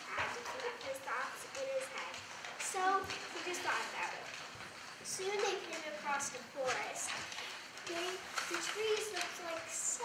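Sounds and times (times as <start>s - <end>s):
child speaking: 0.0s - 4.4s, 5.0s - 10.0s.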